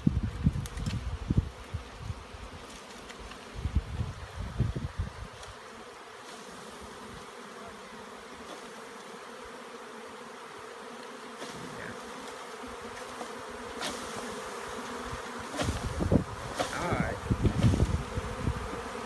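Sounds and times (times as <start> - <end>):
swarm of bees buzzing: 0.0 - 19.0.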